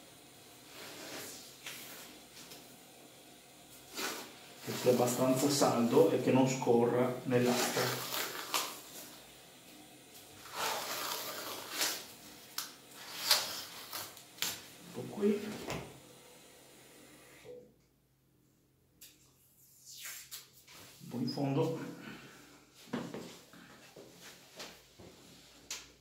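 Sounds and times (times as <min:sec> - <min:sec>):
tape ripping off roll: 0:07.4 - 0:09.1, 0:10.4 - 0:14.7.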